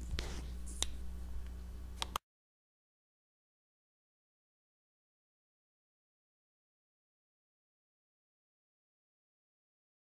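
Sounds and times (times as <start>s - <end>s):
low electrical hum: 0.0s - 2.2s.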